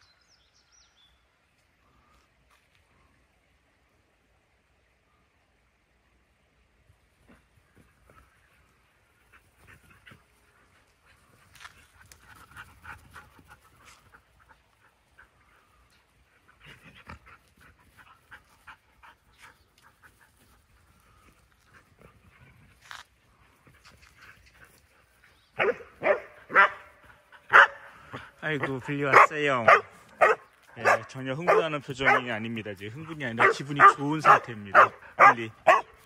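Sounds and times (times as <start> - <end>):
dogs panting and moving: 7.3 - 36.0
dog barking: 25.6 - 26.9, 27.5 - 27.9, 28.6 - 32.3, 33.4 - 36.0.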